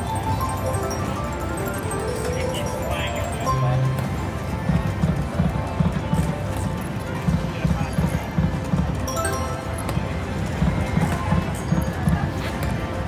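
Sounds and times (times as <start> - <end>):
slot machine game music: 0.0 - 5.8, 9.0 - 11.3.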